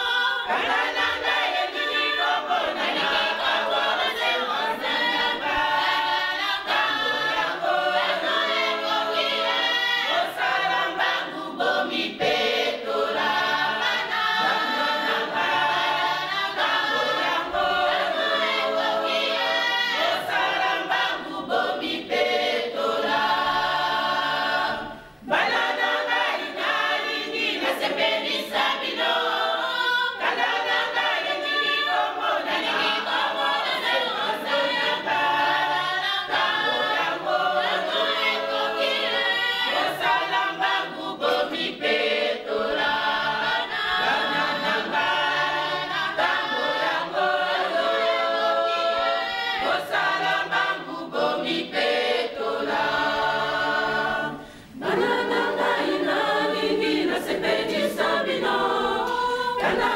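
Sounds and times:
congregation singing a cappella: 0.0 - 59.9.

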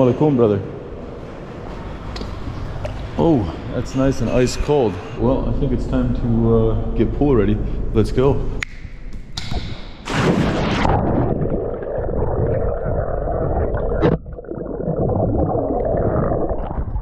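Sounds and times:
underwater churning and bubbling: 10.5 - 17.0.

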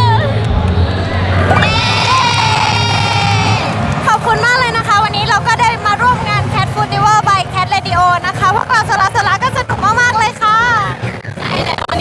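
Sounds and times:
crowd in a hall: 0.0 - 12.0.

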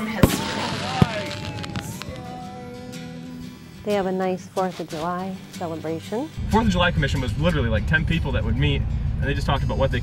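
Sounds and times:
firework bang: 0.2 - 2.4
long held rising tones: 0.5 - 3.8
faint crackles: 0.6 - 2.4.

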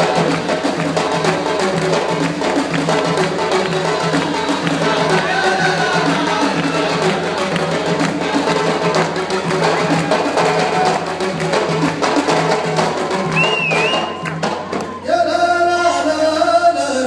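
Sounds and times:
music with percussive beat: 0.0 - 15.1.

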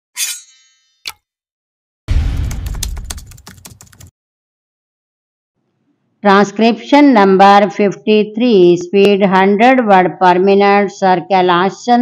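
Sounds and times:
low boom: 2.1 - 3.3
keyboard typing clicks: 2.5 - 4.1.

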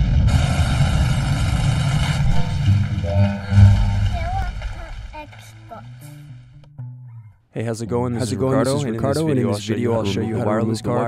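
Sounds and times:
rushing noise: 0.0 - 6.3
deep steady rumble: 0.0 - 6.6
steady tones: 1.2 - 6.6.

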